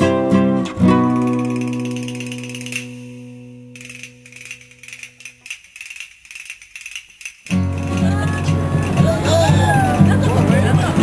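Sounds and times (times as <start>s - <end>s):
shaker playing quick strokes: 1.0s - 9.1s.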